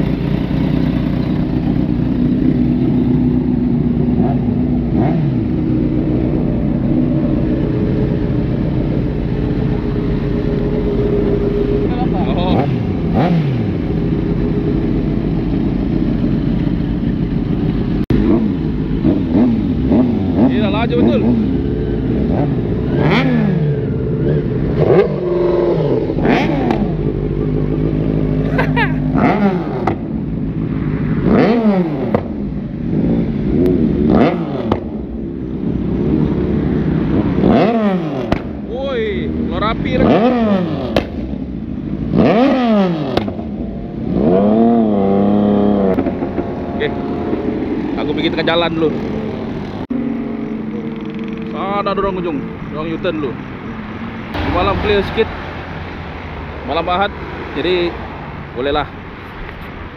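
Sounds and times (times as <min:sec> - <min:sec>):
motorcycles idling and revving: 0:00.0 - 0:59.9.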